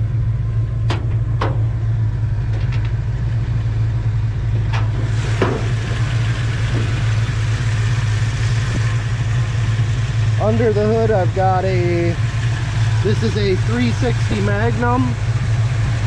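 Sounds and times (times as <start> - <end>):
engine idling: 0.0 - 16.0
metallic clicks of hood latch: 0.8 - 1.7.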